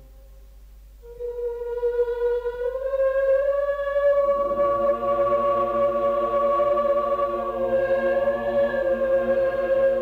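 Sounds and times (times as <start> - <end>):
choir singing a long note: 1.0 - 10.0.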